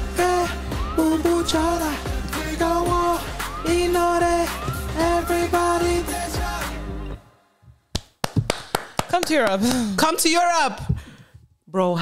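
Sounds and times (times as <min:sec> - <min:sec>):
pop music: 0:00.0 - 0:07.3
sharp hand claps: 0:07.9 - 0:09.9.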